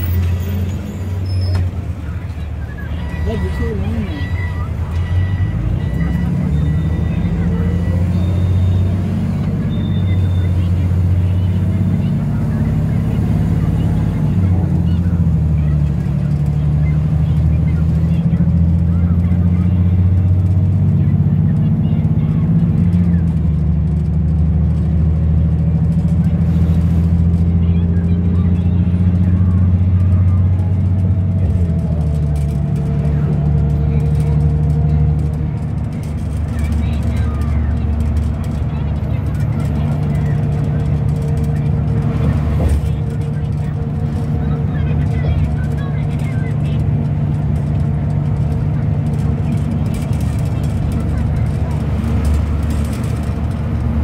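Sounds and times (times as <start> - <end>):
bus engine drone: 0.0 - 54.0.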